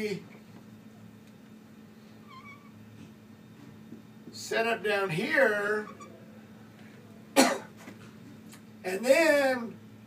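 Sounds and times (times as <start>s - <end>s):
faint low hum: 0.0s - 10.0s
marker squeaking on whiteboard: 2.2s - 2.8s, 5.8s - 6.2s.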